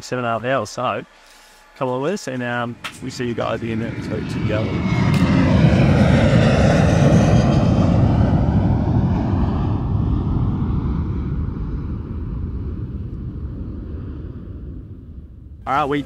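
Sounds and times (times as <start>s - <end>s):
jet airplane flying past: 0.4s - 16.0s.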